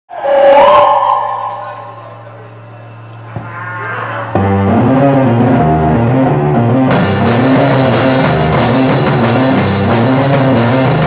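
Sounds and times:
long held note sliding up: 0.1s - 5.6s.

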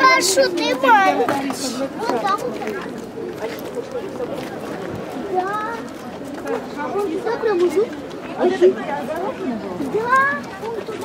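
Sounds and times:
babble of overlapping voices: 0.0s - 11.0s.

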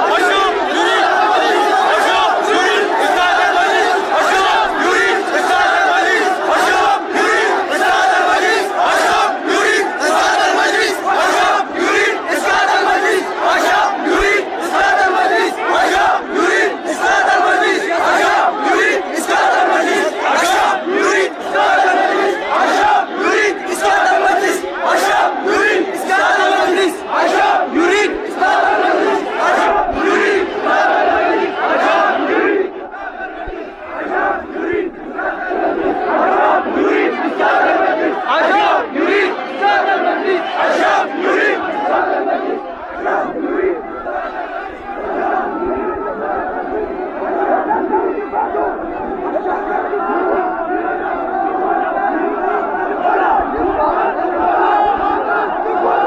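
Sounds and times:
crowd shouting and chanting: 0.0s - 56.0s.

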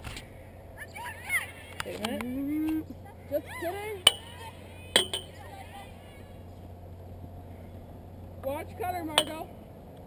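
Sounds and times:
faint distant voices: 0.7s - 9.6s.

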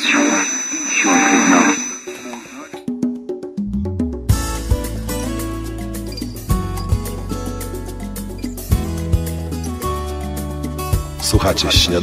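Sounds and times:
radio jingle: 0.0s - 2.8s
voice: 0.0s - 2.8s, 11.2s - 12.0s.

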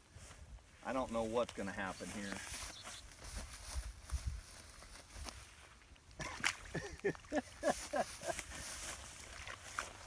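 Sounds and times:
grass and weeds rustling: 0.0s - 10.0s
wind rumble on microphone: 3.3s - 4.6s.

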